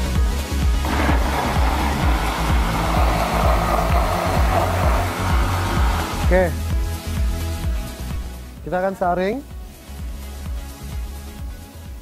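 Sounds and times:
background music with steady beat: 0:00.0 - 0:12.0
blender churning: 0:00.8 - 0:06.4.

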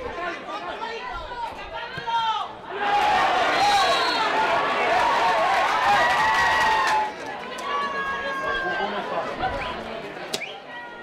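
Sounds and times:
players calling out and talking: 0:00.0 - 0:04.7.

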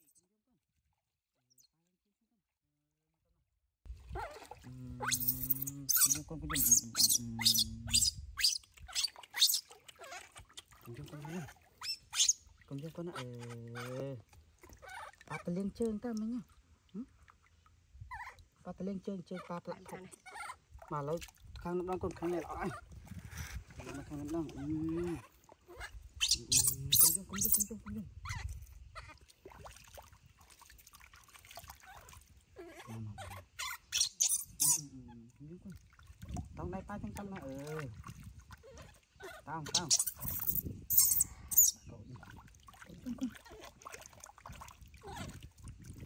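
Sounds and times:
water splashing: 0:03.9 - 0:17.8, 0:19.5 - 0:32.6, 0:33.4 - 0:46.0
baby monkey crying: 0:05.0 - 0:09.6, 0:11.8 - 0:12.4, 0:25.2 - 0:27.7, 0:32.6 - 0:34.8, 0:39.2 - 0:41.8
high squeak: 0:39.7 - 0:41.7.

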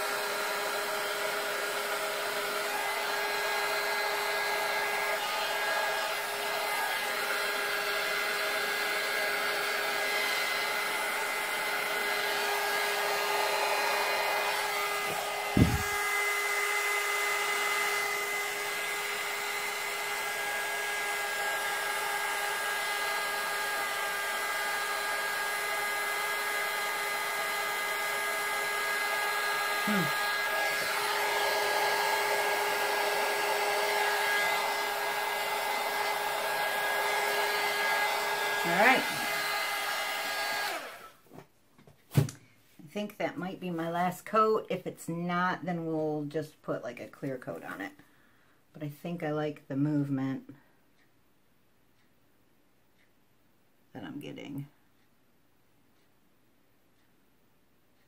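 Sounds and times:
heat gun blowing air: 0:00.0 - 0:41.2.

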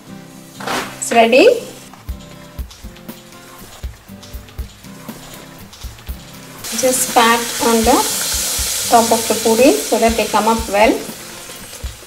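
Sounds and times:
soft background music: 0:00.0 - 0:12.0
oil sizzling loudly: 0:01.4 - 0:12.0.

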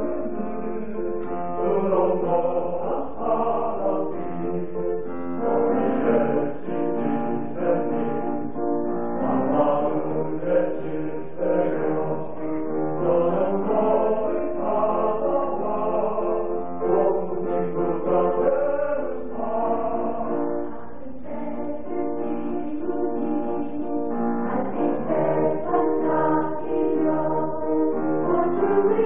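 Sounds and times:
choir singing in harmony: 0:00.0 - 0:29.0
instrumental accompaniment: 0:00.0 - 0:29.0.

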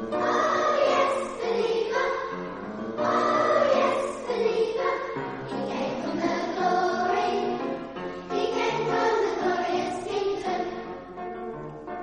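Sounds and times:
children's choir singing: 0:00.0 - 0:11.3.

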